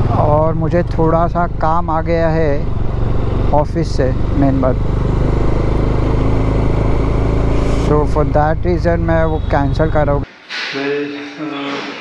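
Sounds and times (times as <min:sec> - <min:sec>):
motorcycle engine running: 0:00.0 - 0:10.2
road noise rush: 0:00.0 - 0:12.0.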